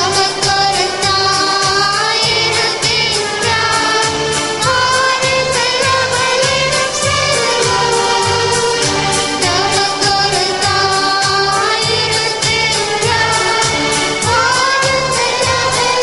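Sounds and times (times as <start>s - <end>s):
devotional song with beat and bass: 0.0s - 16.0s.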